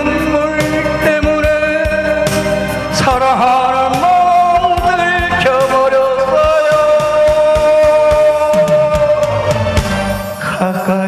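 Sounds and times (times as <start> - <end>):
man singing into a microphone: 0.0 - 9.5, 10.4 - 11.0
steady kick-drum beat: 0.0 - 10.4
instrumental accompaniment: 0.0 - 11.0.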